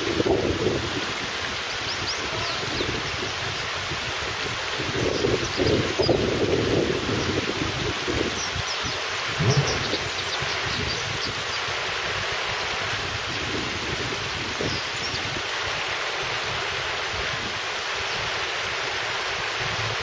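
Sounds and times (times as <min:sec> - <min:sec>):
river water rushing over rocks: 0:00.0 - 0:20.0
low thump: 0:09.4 - 0:10.0.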